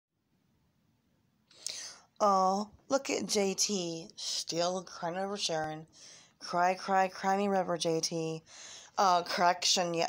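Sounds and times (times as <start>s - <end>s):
woman talking: 1.6s - 10.0s.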